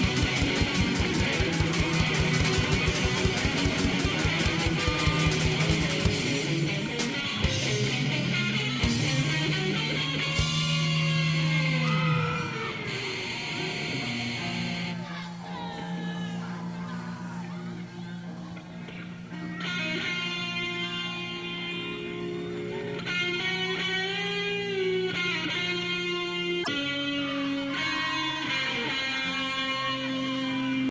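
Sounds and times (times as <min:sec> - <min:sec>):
live rock band: 0:00.0 - 0:16.4, 0:18.2 - 0:30.9
ringing guitar tones: 0:00.0 - 0:30.9
electric guitar low sliding note: 0:07.3 - 0:18.3.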